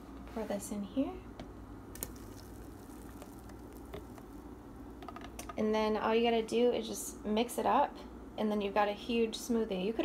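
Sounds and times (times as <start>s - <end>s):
thick smoothie pouring: 1.9s - 4.6s.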